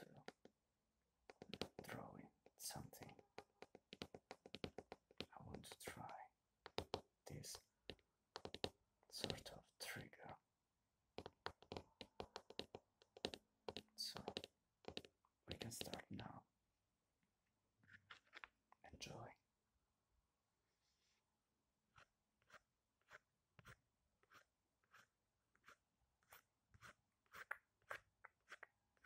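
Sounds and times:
man whispering: 0:00.0 - 0:00.3, 0:01.6 - 0:03.3, 0:05.2 - 0:06.4, 0:07.2 - 0:07.7, 0:09.1 - 0:10.4, 0:13.8 - 0:14.5, 0:15.4 - 0:16.5, 0:18.8 - 0:19.5
pencil scratching on paper: 0:11.2 - 0:16.0, 0:21.9 - 0:29.0.

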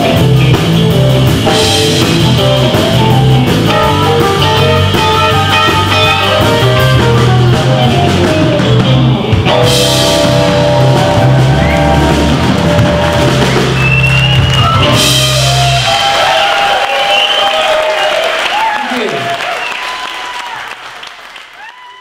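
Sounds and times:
live rock band playing: 0:00.0 - 0:18.4
audience shouting: 0:10.1 - 0:20.9
audience applause: 0:10.5 - 0:22.0.

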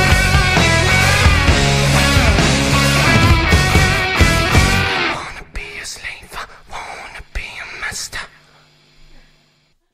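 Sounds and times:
breathy whispered vocals: 0:05.0 - 0:09.3.

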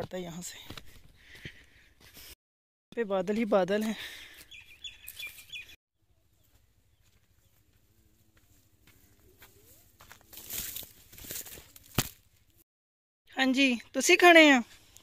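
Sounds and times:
dry rustle with light crackles: 0:06.5 - 0:12.6.

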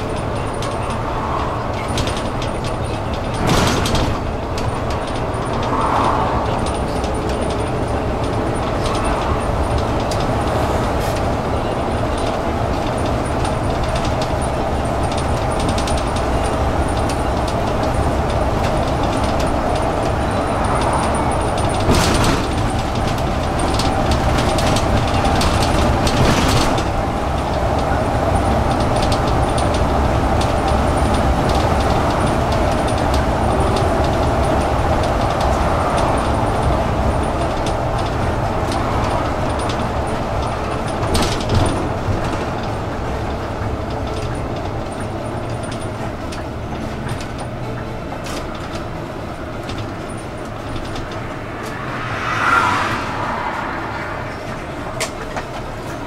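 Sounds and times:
bus engine drone with whine: 0:00.0 - 0:56.0
road noise: 0:00.0 - 0:56.0.

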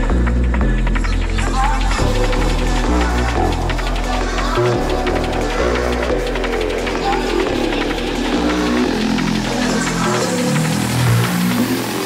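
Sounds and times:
drum and bass music: 0:00.0 - 0:12.0.

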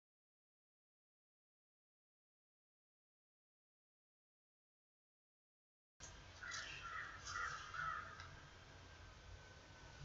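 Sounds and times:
faint room hum: 0:06.0 - 0:10.0
bird calling: 0:06.4 - 0:08.4.

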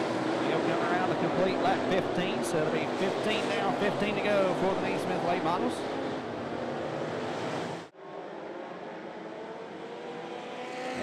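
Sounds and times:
distant race cars droning: 0:00.0 - 0:11.0.

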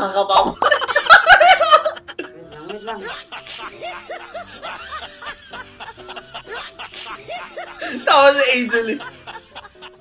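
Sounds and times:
background music: 0:00.0 - 0:10.0
person laughing and snickering: 0:00.6 - 0:08.0.

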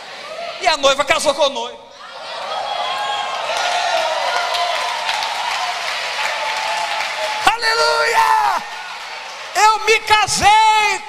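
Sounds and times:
crowd voices: 0:00.0 - 0:00.6, 0:01.9 - 0:07.5
congregation applauding: 0:02.8 - 0:10.9.

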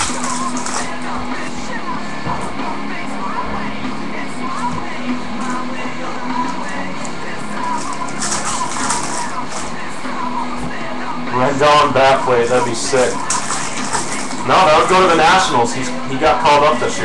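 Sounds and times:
background music: 0:00.0 - 0:17.0
man talking: 0:11.3 - 0:13.2, 0:14.4 - 0:17.0.

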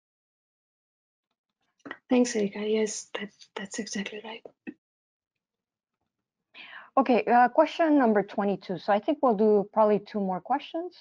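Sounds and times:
person speaking: 0:01.9 - 0:04.7.

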